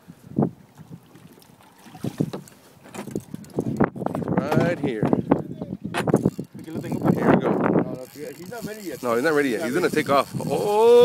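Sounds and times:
people talking: 6.6 - 11.0.

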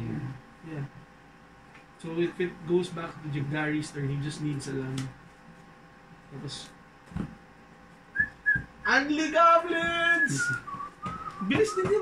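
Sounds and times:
high whistle-like chirps: 8.1 - 8.7, 10.1 - 11.8
man's voice: 11.4 - 12.0.

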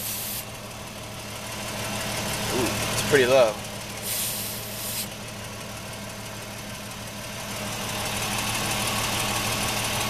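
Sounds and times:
hiss: 0.0 - 0.5, 4.0 - 5.1
vehicle engine idling: 0.0 - 10.0.

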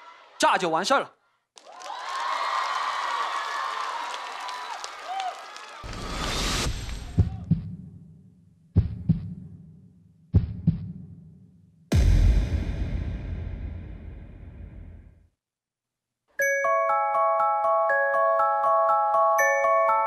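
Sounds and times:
studio audience cheering: 1.6 - 7.4
electronic riser whoosh: 5.8 - 7.2
deep booming bass hits: 11.9 - 15.2.

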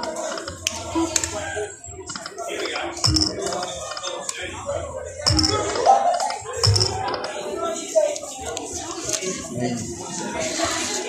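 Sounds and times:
background chatter: 0.0 - 11.0
electronic machine tones: 3.0 - 3.6.

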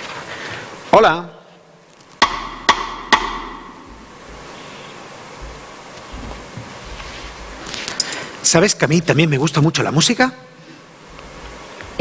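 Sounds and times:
knocks on metal saucepan: 2.2 - 4.0.

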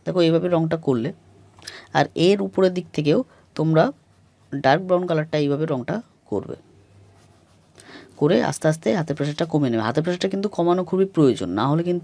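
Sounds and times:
oil pastel scratching on paper: 2.5 - 5.8, 7.0 - 10.3.

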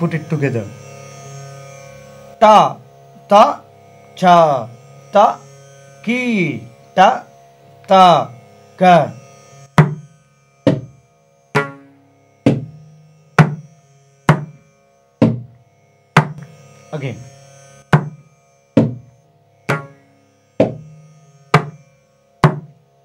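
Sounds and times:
hand drum strokes: 9.8 - 12.8, 13.4 - 13.7, 14.3 - 14.6, 15.2 - 15.6, 16.2 - 16.6, 17.8 - 19.1, 19.7 - 20.0, 20.6 - 20.9, 21.5 - 21.8, 22.4 - 22.8.

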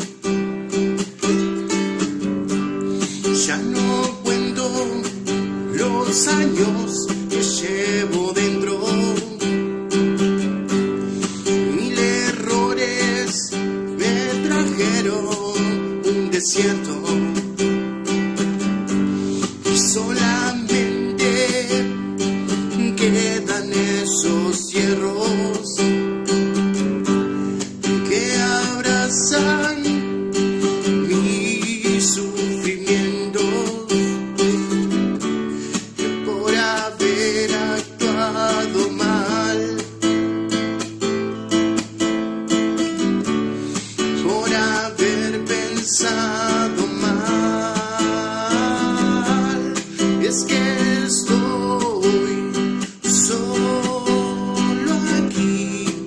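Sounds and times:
strummed acoustic guitar: 0.0 - 56.0
man singing: 2.9 - 10.0, 11.2 - 18.5, 19.2 - 41.0, 43.7 - 56.0.

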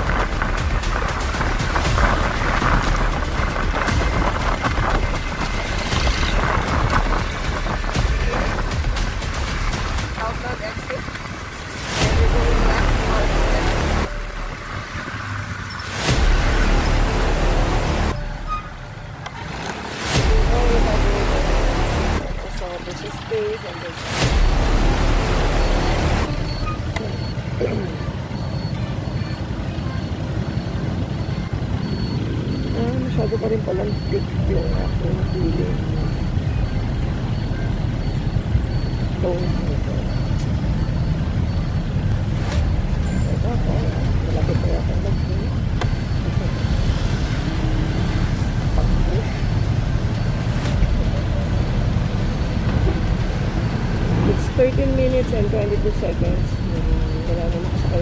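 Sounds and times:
wind on microphone: 0.0 - 9.7
motorcycle engine rumble: 0.0 - 58.0.

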